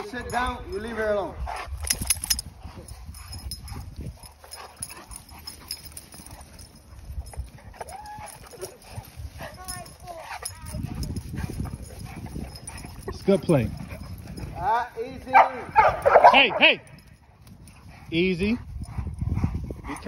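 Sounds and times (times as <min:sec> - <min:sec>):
paws scuffling and thudding: 0:00.0 - 0:16.3.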